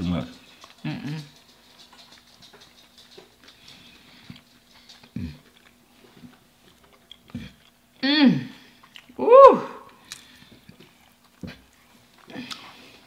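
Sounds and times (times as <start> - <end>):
person chewing: 0.4 - 8.0, 8.6 - 9.2, 9.8 - 13.0
person humming mm: 7.4 - 8.6.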